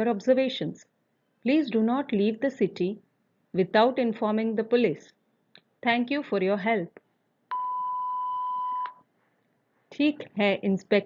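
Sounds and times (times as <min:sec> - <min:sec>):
electronic beep: 0:07.5 - 0:09.0.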